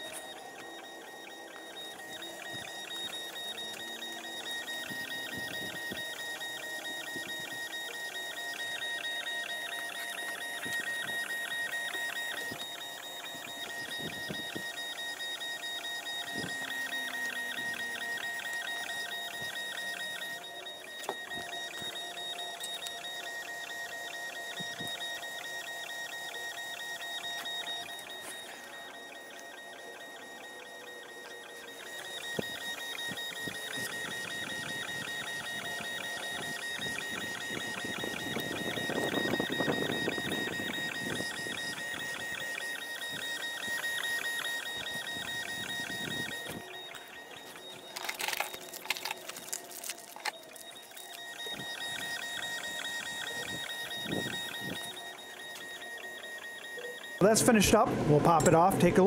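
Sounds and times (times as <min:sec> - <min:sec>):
stepper motors whining: 0:00.0 - 0:59.0.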